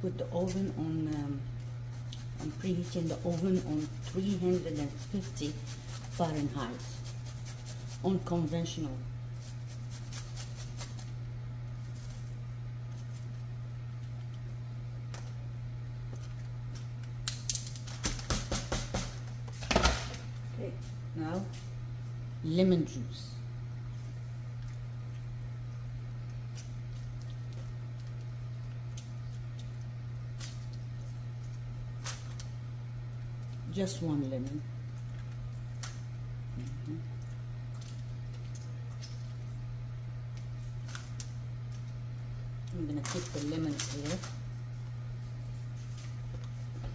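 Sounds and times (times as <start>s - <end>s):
steady low hum: 0.0s - 46.9s
paper and foil crinkling: 9.3s - 11.1s, 43.0s - 44.4s.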